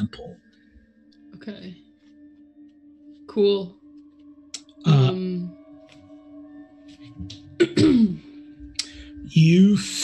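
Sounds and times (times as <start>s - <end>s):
man clearing his throat: 7.6s - 8.3s.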